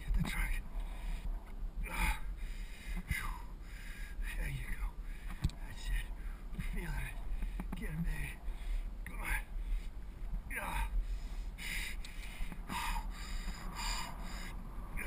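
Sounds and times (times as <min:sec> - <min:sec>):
wind and riding noise: 0:00.0 - 0:15.0
man breathing: 0:00.7 - 0:04.4, 0:05.0 - 0:15.0
man's wordless vocal sounds: 0:01.8 - 0:02.3, 0:10.4 - 0:11.0.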